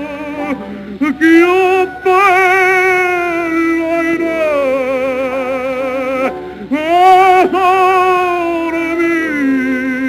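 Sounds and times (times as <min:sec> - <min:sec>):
operatic singing: 0:00.0 - 0:10.0.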